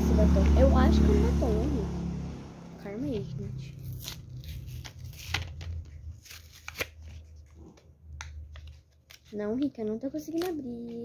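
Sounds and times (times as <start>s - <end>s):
plastic packaging crinkling: 3.8s - 7.7s.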